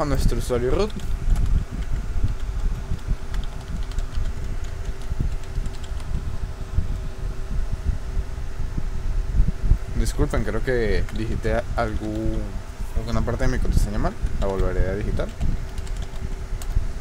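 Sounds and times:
thin hum: 0.0s - 17.0s
keyboard keys clicking: 3.3s - 6.2s, 11.9s - 12.4s, 14.3s - 16.8s.

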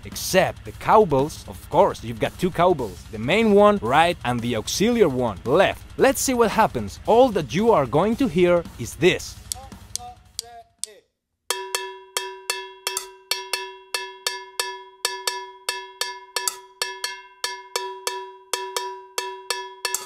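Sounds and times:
cowbells struck in syncopation: 11.5s - 20.0s.

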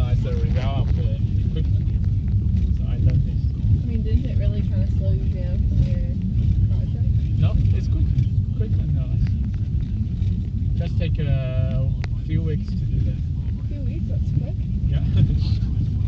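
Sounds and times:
car road and engine noise: 0.0s - 16.0s
faint talk: 0.0s - 16.0s.

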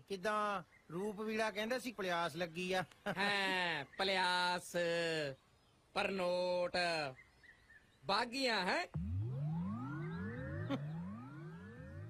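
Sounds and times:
rising whistling glides: 9.0s - 12.0s.

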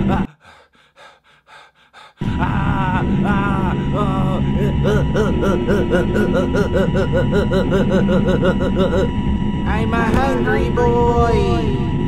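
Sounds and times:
man panting: 0.0s - 9.1s.

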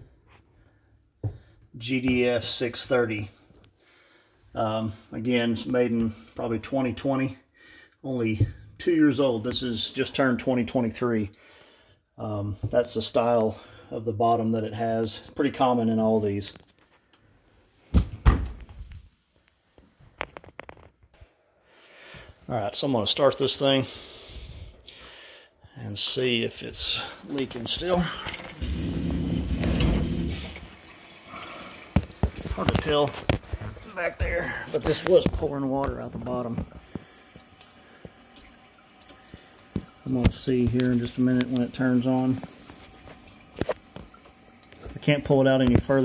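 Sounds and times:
water hissing into dishwasher: 28.0s - 33.1s, 36.2s - 45.1s.

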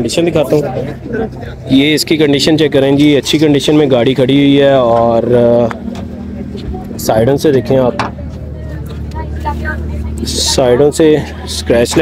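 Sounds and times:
faint distant voices: 0.0s - 12.0s
steady low hum: 0.0s - 12.0s.

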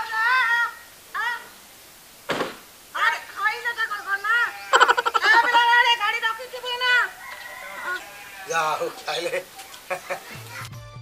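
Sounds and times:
rooster crowing: 4.4s - 5.7s, 6.6s - 9.4s.

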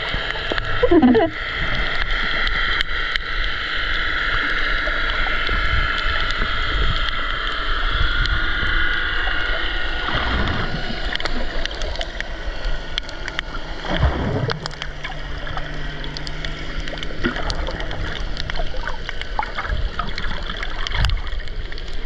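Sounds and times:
distant boat motor underwater: 0.0s - 22.0s
sharp reef clicks: 1.8s - 8.4s, 10.1s - 22.0s
water rushing past: 10.0s - 12.1s, 13.4s - 21.9s.

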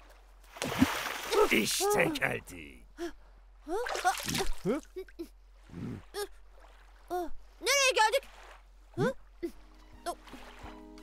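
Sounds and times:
cartoon wordless vocal cries: 1.4s - 2.5s.

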